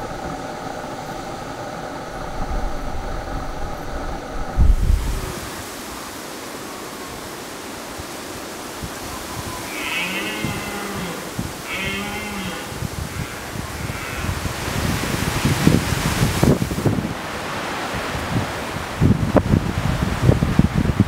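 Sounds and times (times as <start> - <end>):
wind through grass: 0.0 - 21.0
deer calling: 9.2 - 14.5.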